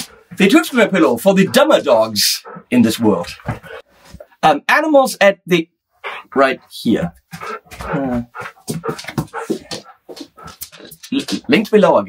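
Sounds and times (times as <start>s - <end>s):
dog whimpering: 1.4s - 3.8s, 6.0s - 6.5s, 7.4s - 10.9s.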